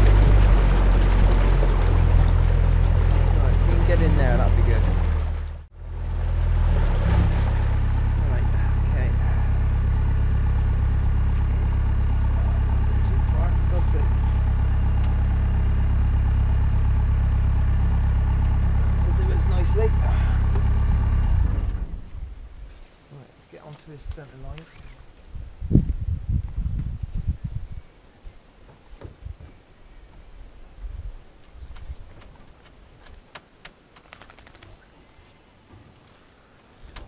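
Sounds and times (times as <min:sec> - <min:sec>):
boat diesel engine running: 0:00.0 - 0:22.0.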